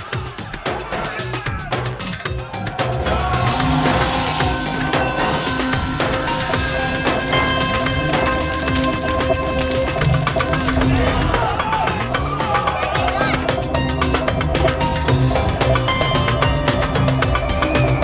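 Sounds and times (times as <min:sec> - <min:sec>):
fast percussion: 0:00.0 - 0:18.0
layered voices: 0:00.0 - 0:18.0
music with long held notes: 0:00.0 - 0:18.0
sound effects: 0:02.0 - 0:18.0.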